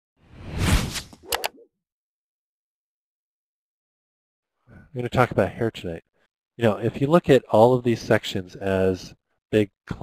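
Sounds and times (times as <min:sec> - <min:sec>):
whoosh: 0:00.3 - 0:01.5.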